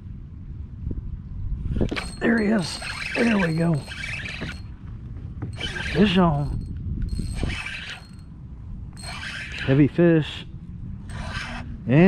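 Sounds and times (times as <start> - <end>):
fishing reel whirring and clicking: 1.9 - 4.7, 5.5 - 8.3, 9.0 - 9.9, 11.1 - 11.7.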